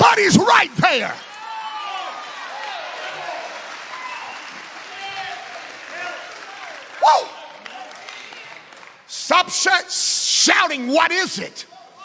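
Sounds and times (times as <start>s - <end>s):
congregation applauding: 0.1s - 9.9s.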